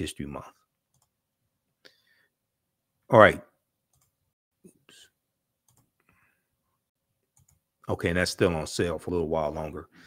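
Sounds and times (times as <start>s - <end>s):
computer mouse clicks: 0.9s - 1.1s, 3.9s - 4.2s, 5.6s - 6.1s, 7.3s - 7.6s.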